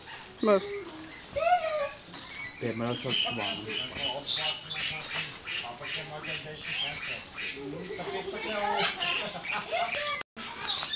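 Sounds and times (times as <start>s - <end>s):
parrots squawking and chattering: 0.0s - 10.9s.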